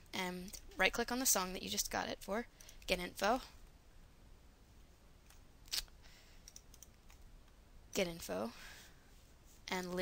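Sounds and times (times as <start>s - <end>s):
computer mouse click: 6.4s - 7.6s.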